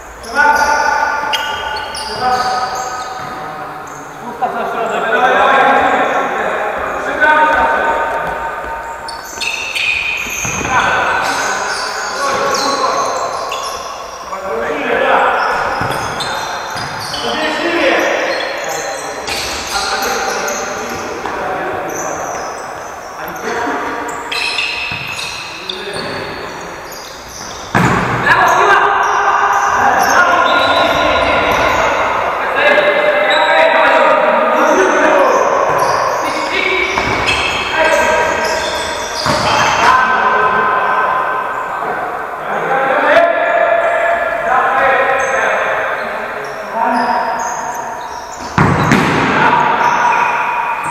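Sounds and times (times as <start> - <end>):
players shouting in echoing hall: 0.0 - 50.9.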